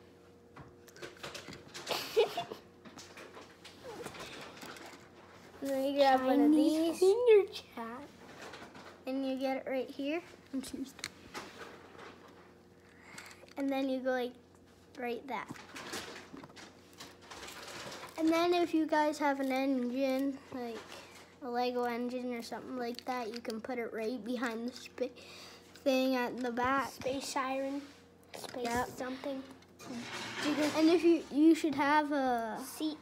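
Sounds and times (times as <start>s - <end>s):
child giggling: 1.9s - 2.7s.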